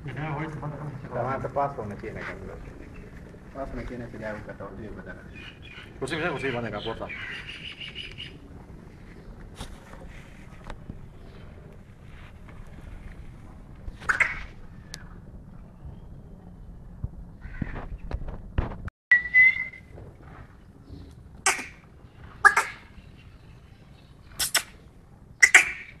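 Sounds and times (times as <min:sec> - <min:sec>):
bird calling sharp high calls: 0:05.3 - 0:08.4, 0:14.0 - 0:15.1, 0:22.4 - 0:23.3, 0:25.4 - 0:26.0
bird whistled note: 0:19.1 - 0:19.9.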